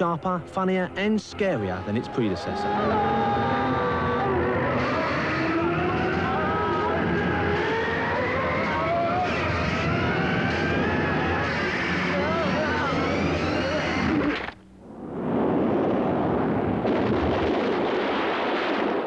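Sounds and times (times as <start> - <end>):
rushing roar: 0.9 - 14.5
man yelling: 1.2 - 5.1.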